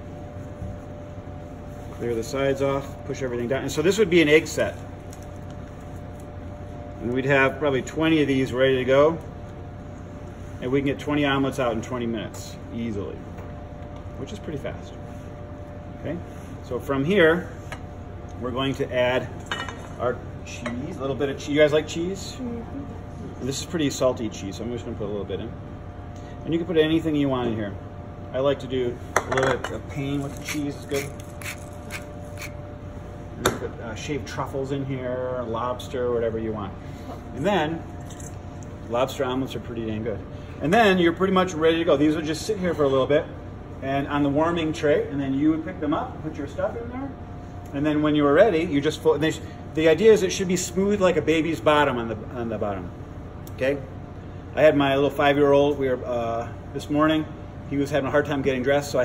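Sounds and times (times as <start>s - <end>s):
ventilation hum: 0.0s - 59.0s
pepper mill grinding: 30.2s - 32.6s.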